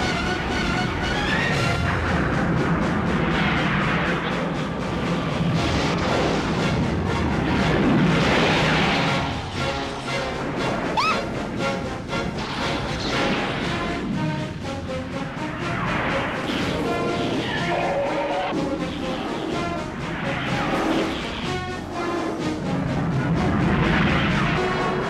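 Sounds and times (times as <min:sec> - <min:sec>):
film score music: 0:00.0 - 0:25.0
explosions: 0:07.4 - 0:09.7, 0:23.2 - 0:25.0.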